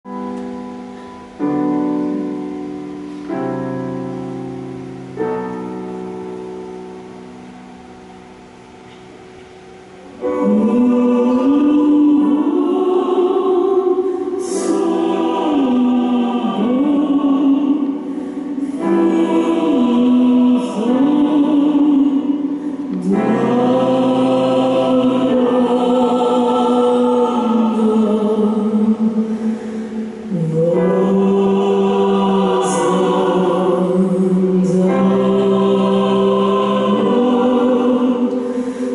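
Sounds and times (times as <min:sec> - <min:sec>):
piano chord: 0:00.0 - 0:38.9
mixed choir singing: 0:10.2 - 0:38.9.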